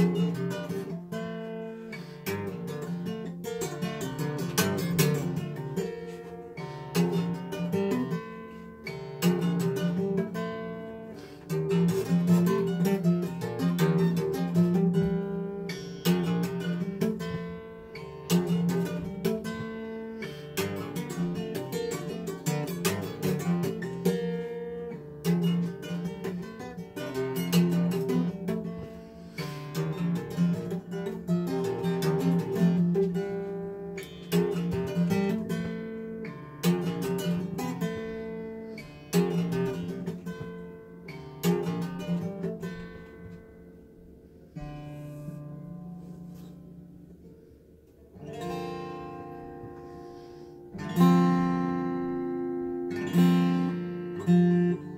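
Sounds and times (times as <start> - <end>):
jazz acoustic guitar: 0.0 - 54.9.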